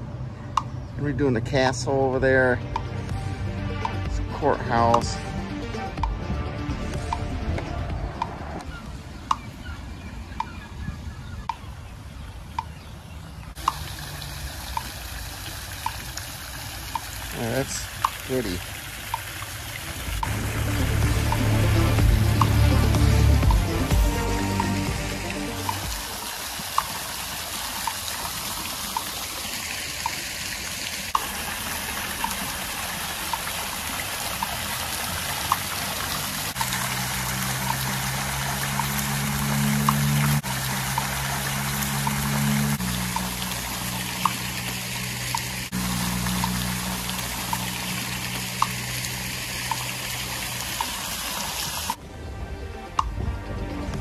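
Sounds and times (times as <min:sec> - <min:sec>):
background music with held bass: 0:00.6 - 0:09.4, 0:20.1 - 0:26.2, 0:52.2 - 0:54.0
fountain water jets splashing: 0:11.3 - 0:54.0.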